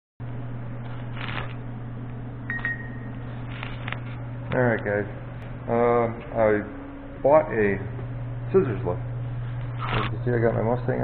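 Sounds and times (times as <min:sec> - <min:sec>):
low electrical hum: 0:00.2 - 0:11.0
short high beep: 0:02.5 - 0:03.1.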